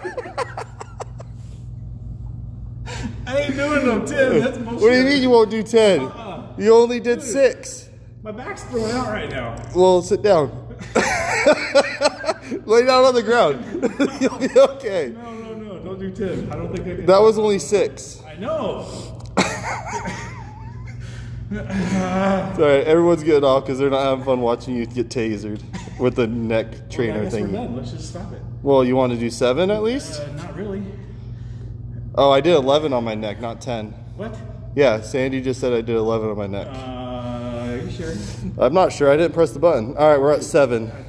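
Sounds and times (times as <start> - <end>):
man laughing: 0.0 - 1.4, 10.6 - 15.4, 19.3 - 22.6, 25.6 - 26.3
low hum: 0.0 - 41.0.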